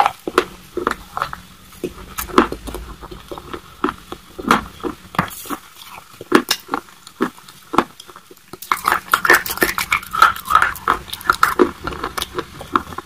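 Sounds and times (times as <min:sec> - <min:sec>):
wet chewing: 0:00.0 - 0:13.0.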